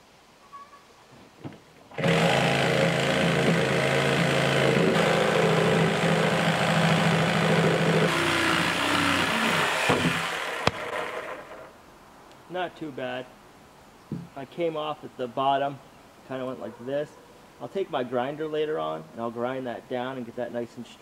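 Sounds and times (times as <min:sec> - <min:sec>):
power saw cutting wood: 0:01.9 - 0:11.7.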